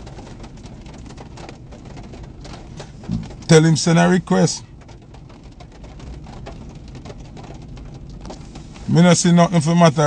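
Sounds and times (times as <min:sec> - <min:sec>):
faint ticks and rustles: 0:00.0 - 0:10.0
low rumble inside car cabin: 0:00.0 - 0:10.0.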